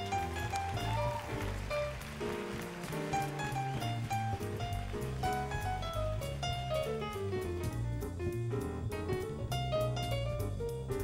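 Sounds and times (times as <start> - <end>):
drums: 0.0 - 11.0
walking bass: 0.0 - 11.0.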